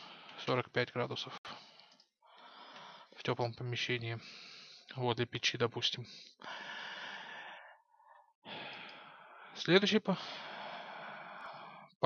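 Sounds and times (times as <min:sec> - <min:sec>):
man speaking: 0:00.4 - 0:01.4, 0:03.2 - 0:04.3, 0:04.9 - 0:06.2, 0:09.6 - 0:10.2.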